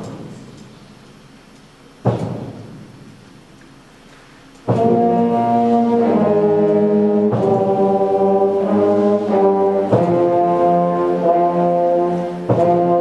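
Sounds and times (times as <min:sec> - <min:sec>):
school concert band playing: 0:04.6 - 0:13.0.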